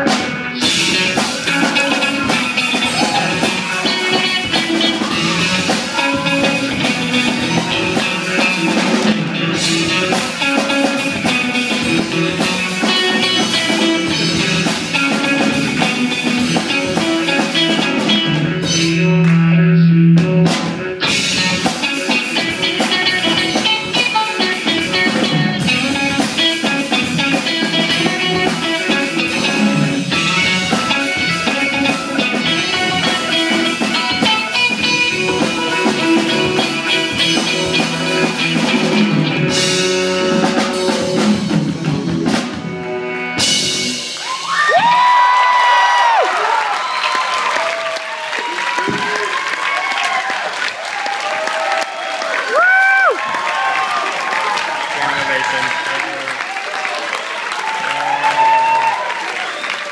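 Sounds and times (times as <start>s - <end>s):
bass guitar: 0.0s - 46.5s
drum kit: 0.0s - 50.2s
electric guitars: 0.0s - 59.9s.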